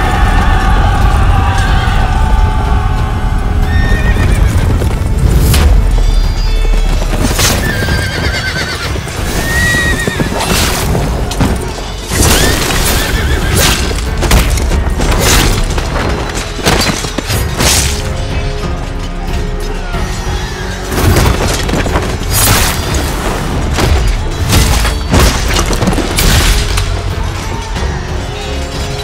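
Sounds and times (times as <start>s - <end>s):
dramatic film score: 0.0s - 29.0s
hooves clopping: 6.1s - 13.5s
horses neighing: 7.4s - 10.8s, 12.1s - 13.6s.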